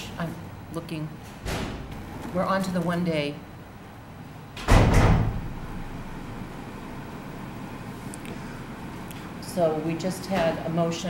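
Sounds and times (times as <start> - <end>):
room tone: 0.0 - 11.0
loud thump with rushing noise: 4.7 - 5.5.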